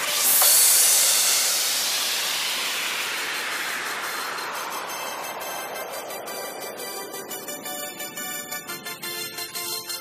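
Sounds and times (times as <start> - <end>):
synthesized white-noise sweep: 0.0 - 10.0.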